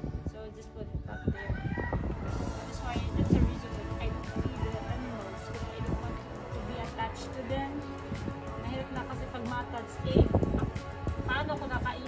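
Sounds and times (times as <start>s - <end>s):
rooster crowing: 1.1s - 2.5s.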